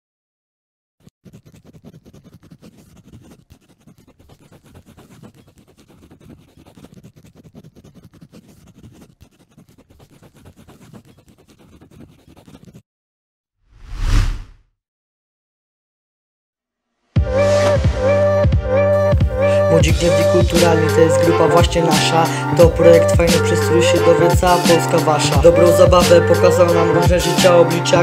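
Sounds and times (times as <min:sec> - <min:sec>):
pencil scratching on paper: 0:01.0 - 0:12.8, 0:19.5 - 0:28.0
loud whoosh: 0:13.7 - 0:14.6.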